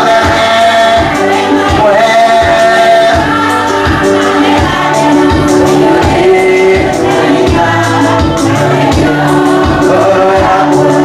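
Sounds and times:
gospel choir singing with band: 0.0 - 11.0.

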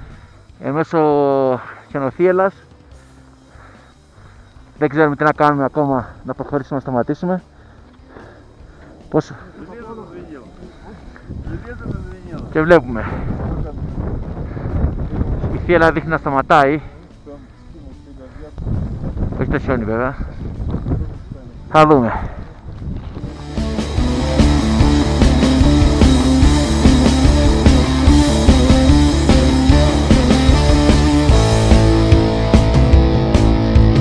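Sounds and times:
wind buffeting microphone: 10.2 - 16.2, 18.4 - 23.4.

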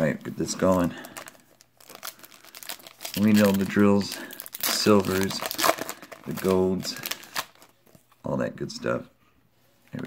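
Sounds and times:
foil wrapper crinkling: 0.6 - 7.7.

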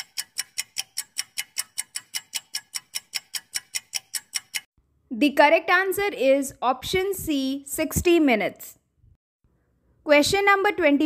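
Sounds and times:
clock ticking: 0.0 - 4.7.

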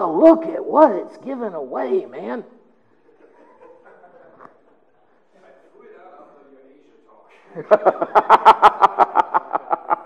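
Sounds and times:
man laughing: 7.6 - 10.0.

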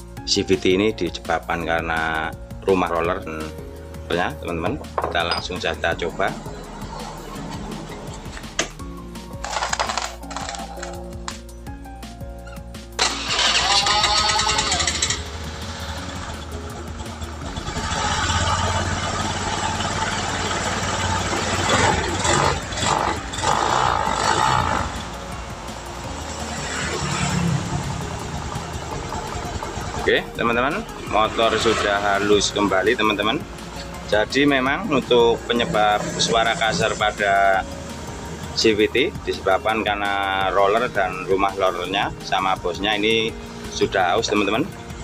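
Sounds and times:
scooter engine revving: 13.0 - 32.8, 35.2 - 38.5.

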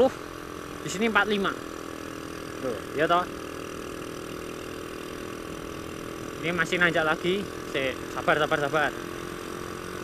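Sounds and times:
motorcycle engine running: 0.0 - 10.0
road and wind noise: 0.0 - 10.0.

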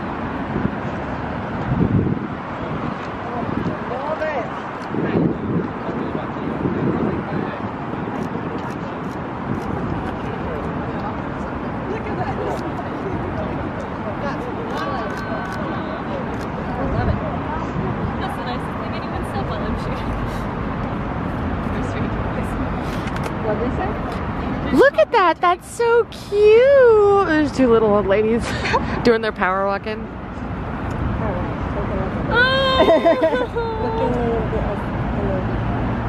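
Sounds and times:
wind on microphone: 0.0 - 13.9
distant traffic: 0.0 - 36.0.

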